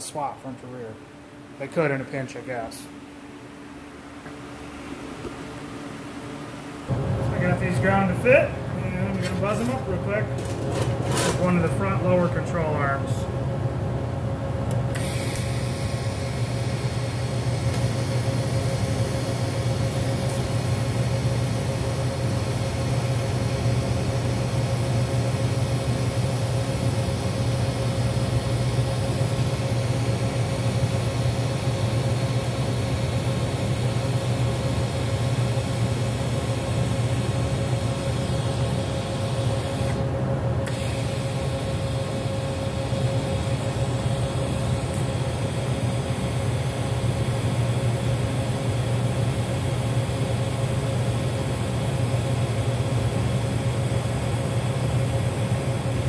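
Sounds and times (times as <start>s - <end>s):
welder buzzing and hissing: 14.9s - 40.0s, 40.7s - 53.9s.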